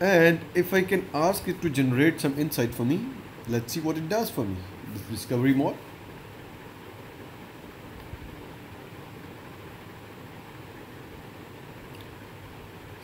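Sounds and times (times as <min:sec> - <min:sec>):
room tone hiss: 0:00.0 - 0:13.0
faint click: 0:11.9 - 0:12.2.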